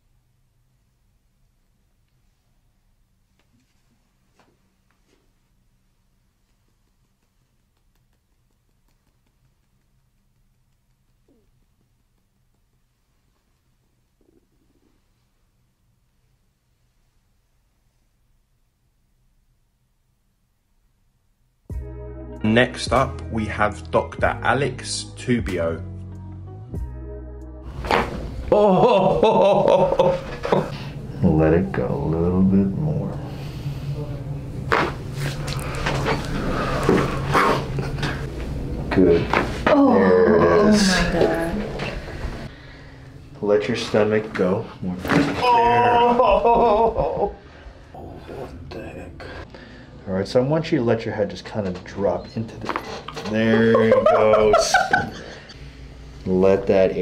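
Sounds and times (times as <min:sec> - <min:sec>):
low steady hum: 0:27.7 - 0:57.0.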